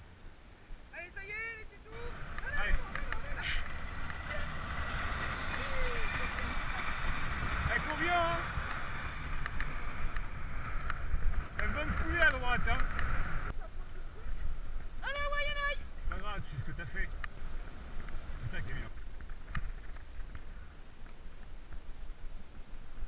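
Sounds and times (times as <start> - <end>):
wind rumbling on microphone: 0.0 - 23.0
tyres hissing on wet path: 2.0 - 15.1.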